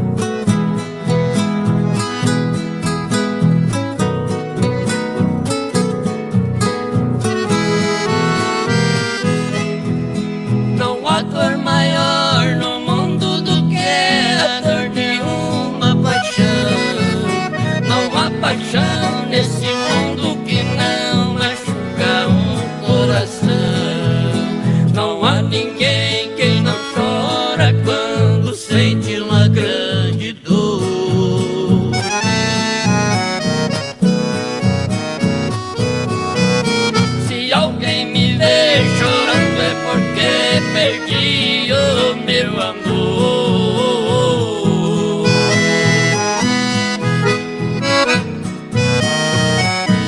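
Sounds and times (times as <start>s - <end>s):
piano accordion: 0.0s - 29.7s, 31.7s - 44.4s, 45.0s - 50.0s
harmonica melody: 0.0s - 29.9s, 31.4s - 50.0s
acoustic guitars: 0.0s - 50.0s.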